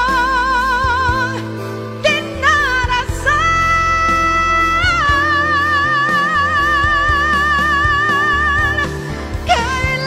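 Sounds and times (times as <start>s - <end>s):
ballad instrumental backing: 0.0s - 10.0s.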